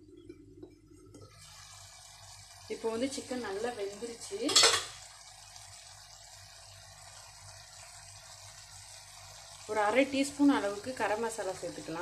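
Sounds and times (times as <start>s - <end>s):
chicken frying sizzling: 0.0s - 12.0s.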